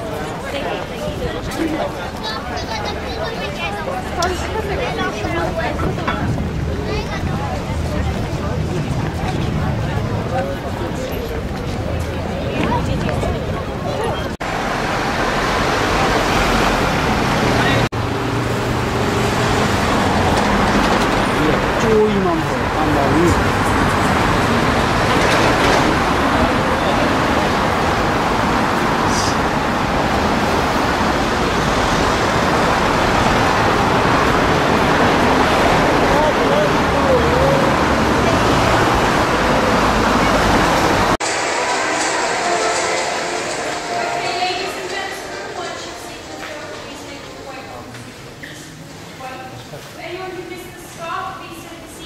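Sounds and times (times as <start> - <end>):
road traffic passing: 0.0 - 52.0.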